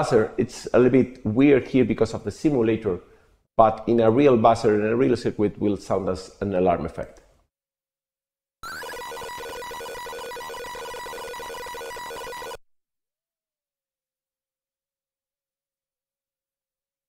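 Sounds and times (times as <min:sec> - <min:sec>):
buzzy electronic alarm tone: 0:08.6 - 0:12.6.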